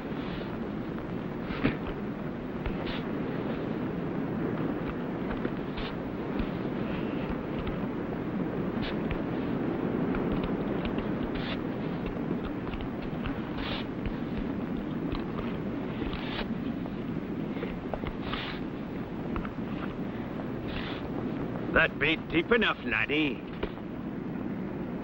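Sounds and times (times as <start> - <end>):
steady rushing background noise: 0.0 - 25.0
shovel scraping sand: 8.8 - 9.1, 11.2 - 11.6, 13.4 - 13.9, 16.1 - 16.5, 18.2 - 18.6, 20.6 - 21.0.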